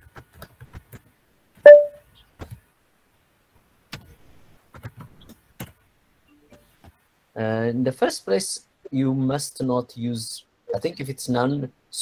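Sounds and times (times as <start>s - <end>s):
electronic ping: 1.7s - 2.0s.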